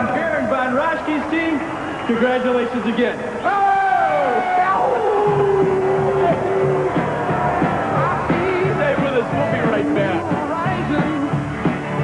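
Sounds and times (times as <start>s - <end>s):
rock music with steady beat: 5.3s - 12.0s
person singing: 8.0s - 11.5s.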